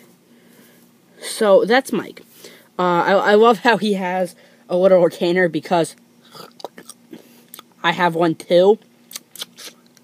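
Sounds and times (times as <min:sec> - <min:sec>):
mouth smacking noises: 0:06.2 - 0:07.7, 0:09.1 - 0:10.0.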